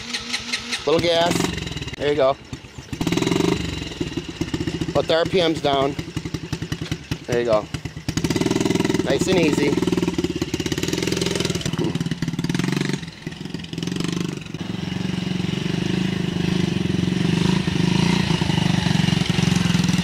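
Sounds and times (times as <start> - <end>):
dirt bike engine running: 0.0 - 20.0.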